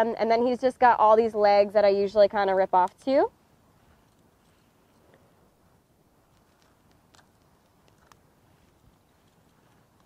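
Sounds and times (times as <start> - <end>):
crab legs clicking and crunching: 6.3 - 10.0.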